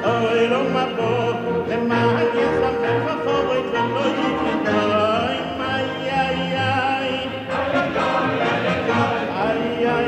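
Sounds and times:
man singing with vibrato: 0:00.0 - 0:10.0
orchestral accompaniment: 0:00.0 - 0:10.0.

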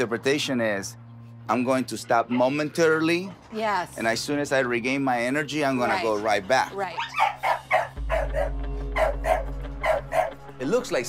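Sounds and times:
dog barking: 0:07.0 - 0:10.4.

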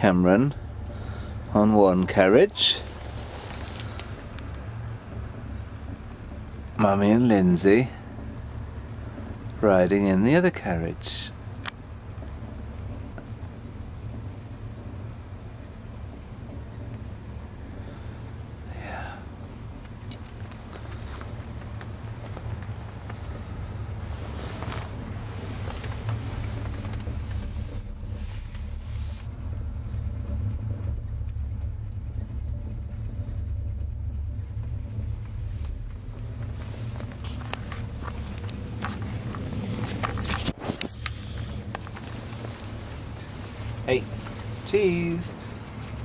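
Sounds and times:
chairlift rumbling on cable: 0:00.0 - 0:46.0.

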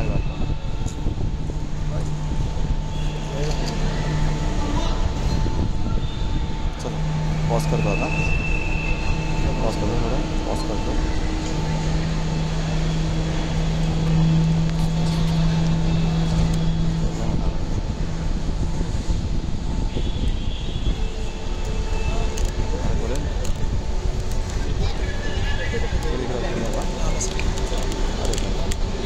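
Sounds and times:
crowd chatter: 0:00.0 - 0:29.0
low engine-like hum: 0:00.0 - 0:29.0.

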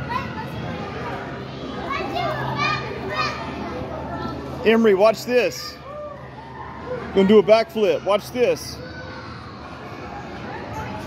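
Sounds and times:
children shouting at play: 0:00.0 - 0:04.4, 0:07.8 - 0:11.0.

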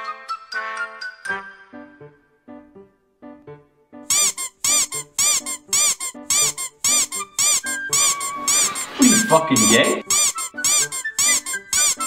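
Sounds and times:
rhythmic squeaking: 0:04.1 - 0:12.0.

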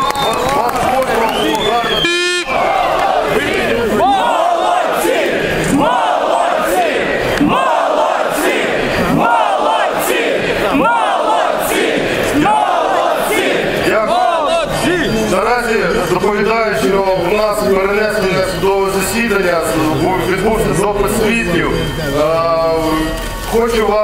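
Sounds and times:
crowd of protesters shouting: 0:00.0 - 0:24.0.

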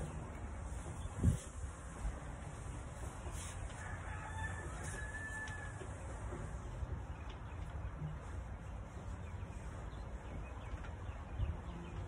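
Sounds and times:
rooster crowing: 0:03.7 - 0:05.9.

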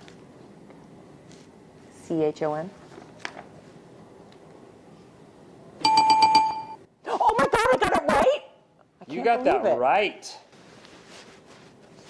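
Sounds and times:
bell ringing rapidly: 0:05.8 - 0:06.8.

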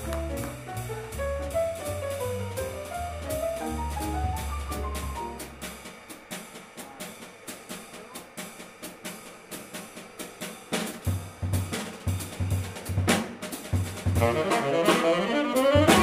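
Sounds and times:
piano and bass: 0:00.0 - 0:05.9, 0:14.0 - 0:16.0
jazz drum solo: 0:00.0 - 0:16.0
snare strokes and cymbal hits: 0:00.0 - 0:16.0.

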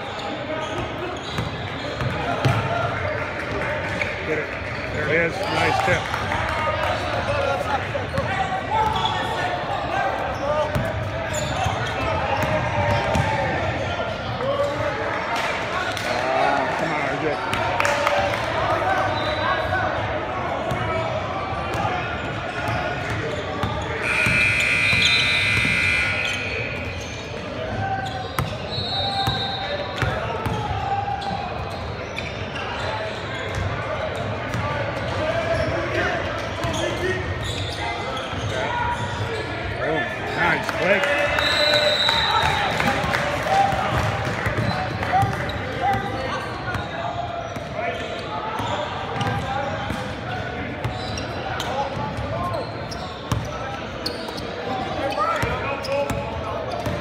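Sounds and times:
sneaker squeaks: 0:00.0 - 0:02.6, 0:08.1 - 0:13.3, 0:22.1 - 0:34.8, 0:35.5 - 0:39.7, 0:44.6 - 0:50.0, 0:50.7 - 0:57.0
people talking and calling out: 0:00.0 - 0:57.0
referee's whistle: 0:19.0 - 0:19.7, 0:24.0 - 0:27.2, 0:28.0 - 0:30.0, 0:41.2 - 0:43.0.

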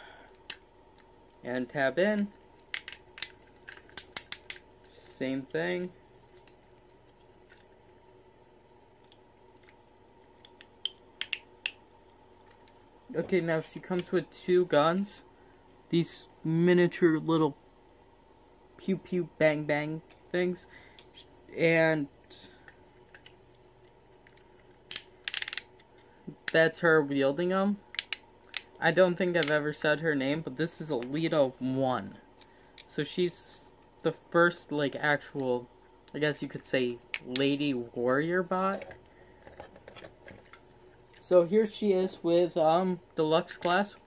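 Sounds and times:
plastic toy parts clicking: 0:02.2 - 0:04.6, 0:10.4 - 0:11.8, 0:24.2 - 0:25.7, 0:27.9 - 0:28.7.

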